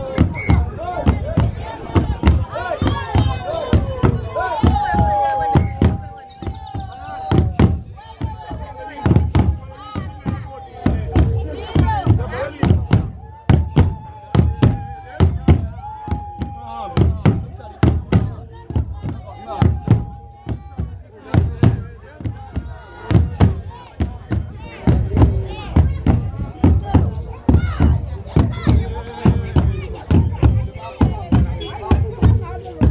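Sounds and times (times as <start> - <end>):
large drums beaten: 0.0 - 32.9
voices chanting: 0.0 - 32.9.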